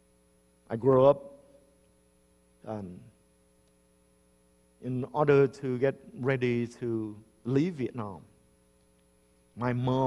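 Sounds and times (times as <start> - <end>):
faint electrical hum: 0.0 - 10.0
man speaking: 0.7 - 1.4, 2.7 - 3.1, 4.8 - 8.3, 9.6 - 10.0.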